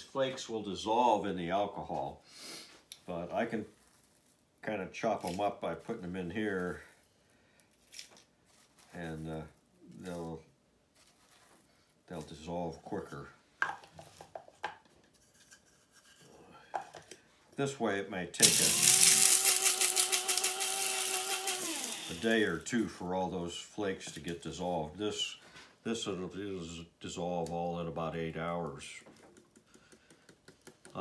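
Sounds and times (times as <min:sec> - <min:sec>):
flakes pattering into glass jar: 0:18.4 - 0:22.7
plastic coffee grinder handling: 0:18.4 - 0:22.7.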